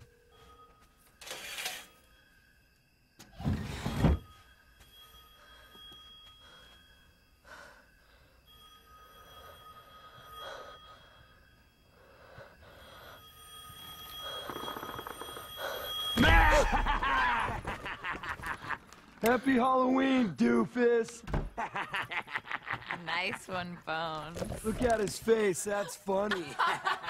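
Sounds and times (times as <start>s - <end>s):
telephone ringing: 12.8s - 19.0s.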